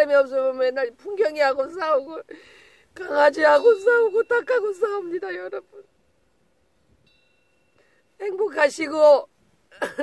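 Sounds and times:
faint wind bell ring: 3.0 - 9.4.

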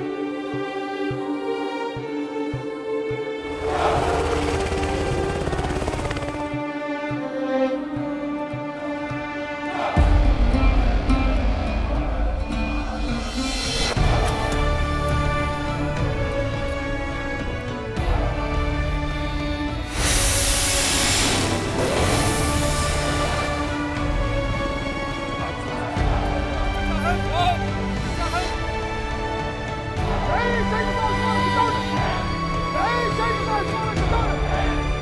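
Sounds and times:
orchestral string music: 0.0 - 35.0
helicopter rotor beating: 3.5 - 6.7.

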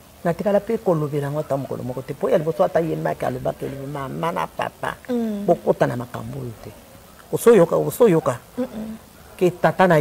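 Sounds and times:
woman speaking animatedly: 0.2 - 6.7.

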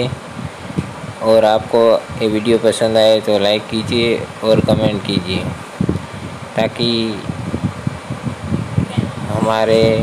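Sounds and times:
cooling fan rumbling: 0.0 - 10.0.

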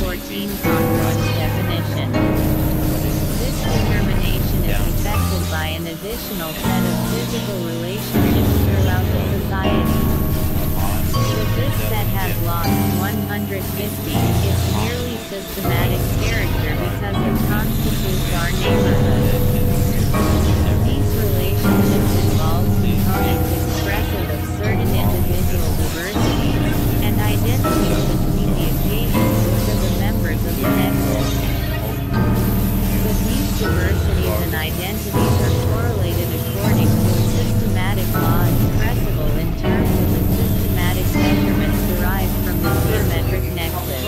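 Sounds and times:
low synthesizer drone: 0.0 - 44.0
steady higher tone: 0.0 - 44.0.

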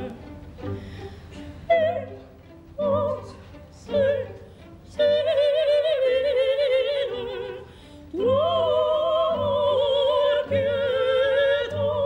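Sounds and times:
woman singing opera: 0.0 - 0.2, 1.6 - 12.0.

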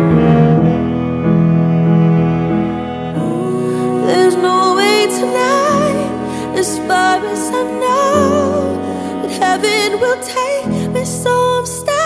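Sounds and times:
bowed strings playing chords: 0.0 - 12.0
piano chords: 0.0 - 12.0.

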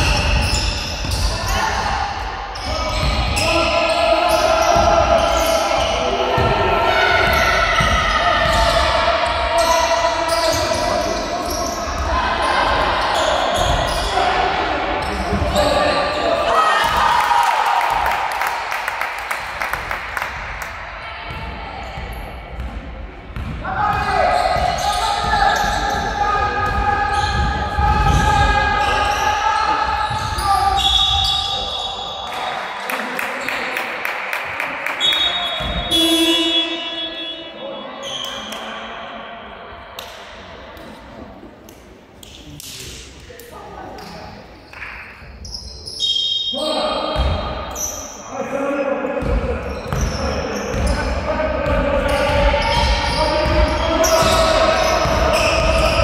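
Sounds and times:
voices calling and shouting: 0.0 - 18.4, 20.6 - 33.9, 34.6 - 56.0
basketball bouncing: 22.5 - 24.0
high whistle: 35.0 - 38.4, 45.6 - 46.7.

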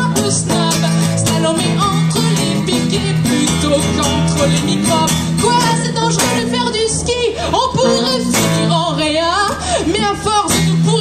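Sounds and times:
acoustic and electric guitars: 0.0 - 11.0
woman singing: 0.0 - 11.0.

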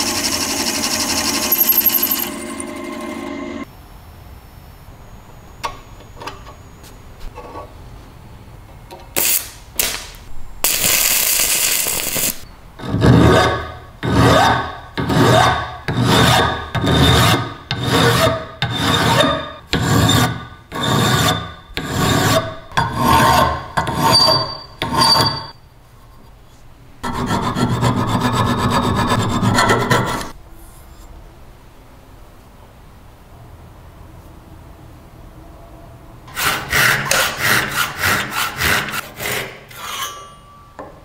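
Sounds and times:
file rasping on metal: 12.8 - 25.5, 27.0 - 30.4, 36.3 - 40.3.

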